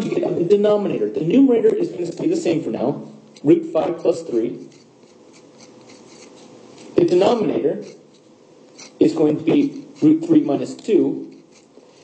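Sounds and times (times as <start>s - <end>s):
pen scratching on paper: 3.4s - 10.2s, 11.2s - 12.0s.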